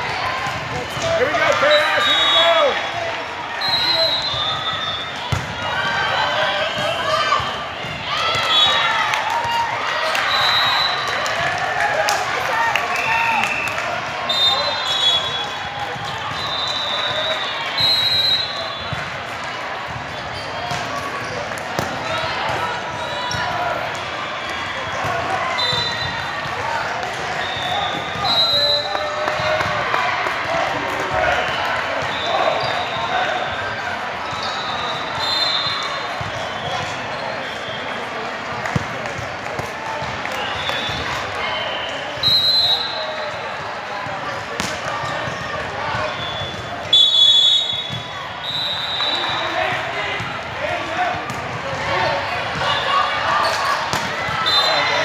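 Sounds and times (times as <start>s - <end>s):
echoing crowd voices: 0.0s - 55.0s
volleyballs thudding: 5.2s - 5.6s, 44.4s - 46.7s, 53.9s - 54.5s.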